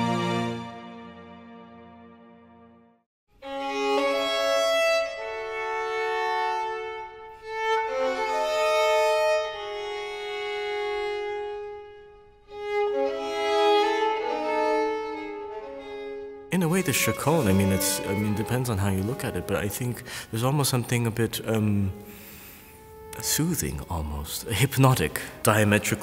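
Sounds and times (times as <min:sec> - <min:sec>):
solo violin playing slowly: 0:00.0 - 0:02.7, 0:03.3 - 0:26.0.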